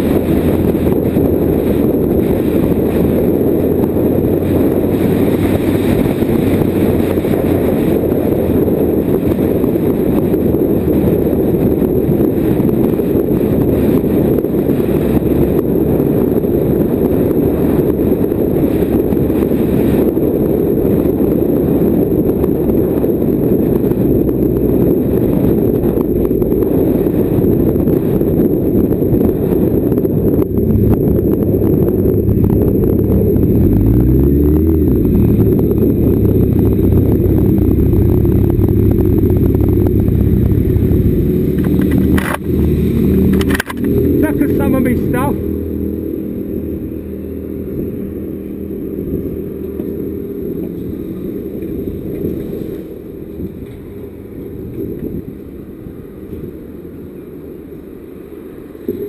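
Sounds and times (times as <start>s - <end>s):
motorcycle engine running: 0.0s - 57.7s
wind rushing over microphone: 0.0s - 59.0s.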